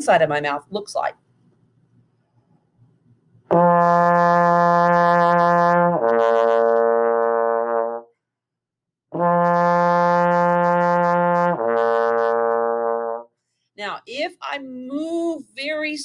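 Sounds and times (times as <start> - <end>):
trombone lip slur: 3.5 - 8.0, 9.2 - 13.2.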